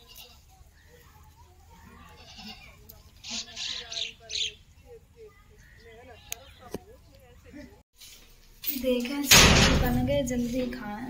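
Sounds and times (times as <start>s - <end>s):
goat bleating faintly: 1.8s - 3.8s.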